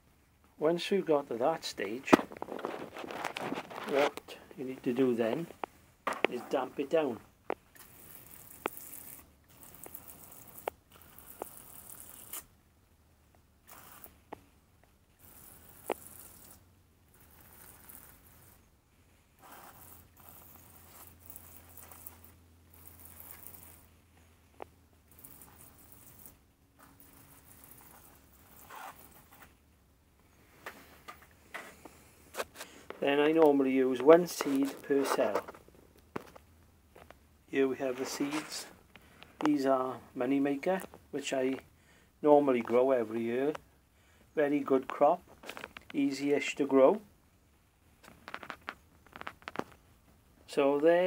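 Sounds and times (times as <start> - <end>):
hose nozzle spraying water: 7.7 - 12.5, 13.6 - 14.3, 15.2 - 18.6, 19.4 - 23.9, 25.1 - 29.4.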